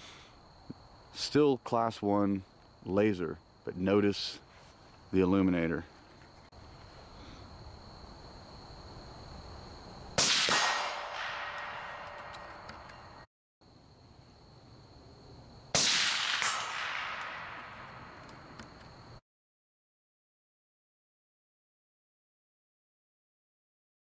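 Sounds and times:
rifle shots with echo: 10.2 - 12.4, 15.8 - 18.1.

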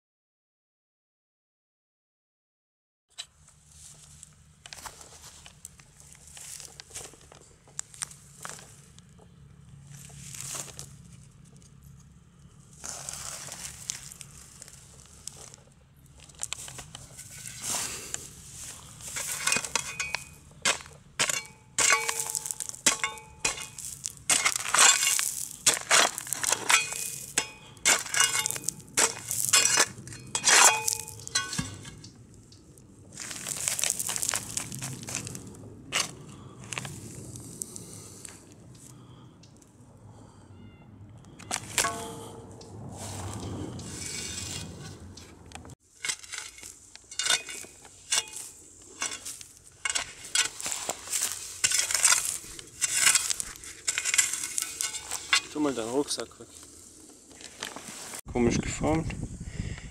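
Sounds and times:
spade digging through soil: 3.1 - 9.0, 9.8 - 11.8, 12.5 - 32.2, 33.1 - 38.2, 41.4 - 58.3
spade ringing on metal: 19.2 - 25.8, 26.5 - 32.0, 41.8 - 42.5, 47.1 - 50.5.

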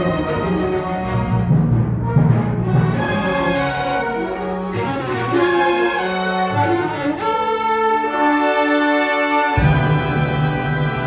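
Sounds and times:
orchestra playing held chords: 0.0 - 11.0.

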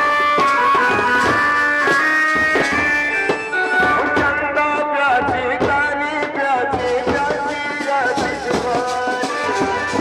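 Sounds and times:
bass drum beating: 0.0 - 10.0
side drum beating: 0.0 - 10.0.

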